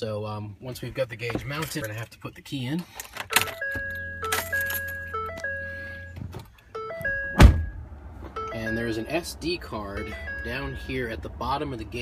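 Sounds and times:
keys clicking: 0:03.0 - 0:05.5
electronic chime tones: 0:06.8 - 0:07.8, 0:10.0 - 0:11.1.

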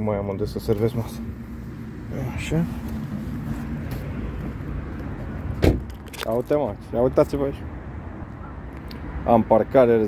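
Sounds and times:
car rumbling: 0:00.0 - 0:10.0.

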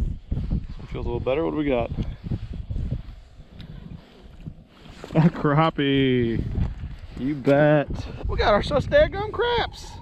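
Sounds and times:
microphone rumbling and rustling: 0:00.0 - 0:09.0.

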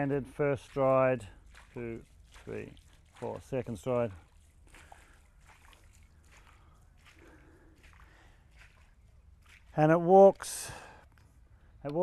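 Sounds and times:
water sloshing splashes: 0:00.0 - 0:11.3
footsteps wading through muddy water: 0:00.0 - 0:12.0.

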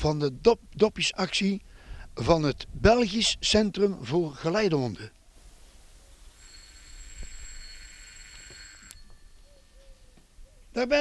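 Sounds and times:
electric doorbell buzzing: 0:06.4 - 0:09.6.

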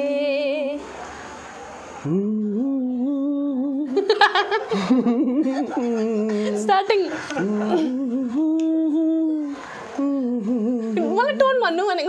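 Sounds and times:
person humming a slow tune: 0:02.0 - 0:04.1, 0:07.3 - 0:11.2.

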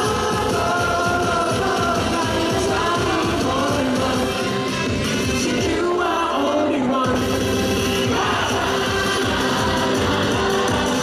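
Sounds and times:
live pop-rock band playing: 0:00.0 - 0:11.0
men singing into microphones: 0:00.0 - 0:11.0.

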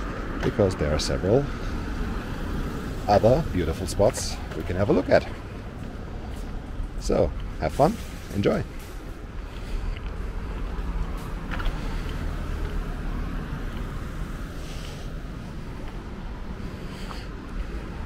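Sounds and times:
cars driving by: 0:00.0 - 0:18.0
low traffic rumble: 0:00.0 - 0:18.0
car passing close by: 0:10.3 - 0:18.0.

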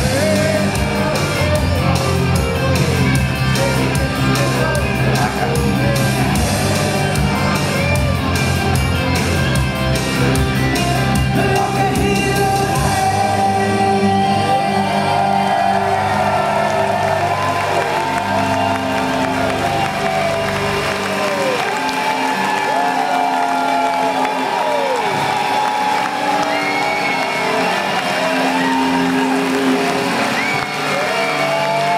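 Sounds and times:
low bass notes: 0:00.0 - 0:21.7
crowd cheering: 0:00.0 - 0:31.9
live rock band: 0:00.0 - 0:31.9.

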